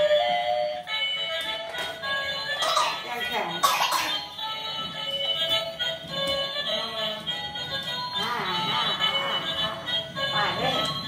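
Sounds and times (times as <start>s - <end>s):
toy train electronic melody: 0.0s - 11.0s.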